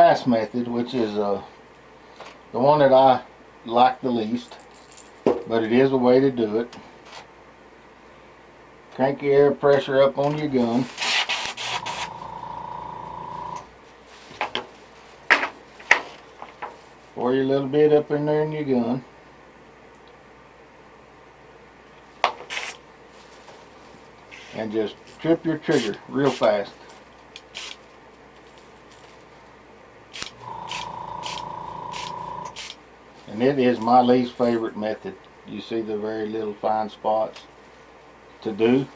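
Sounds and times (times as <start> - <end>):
airbrush air buzzing whine: 11.0 - 13.7, 30.1 - 32.8
airbrush clicks: 30.2 - 32.8.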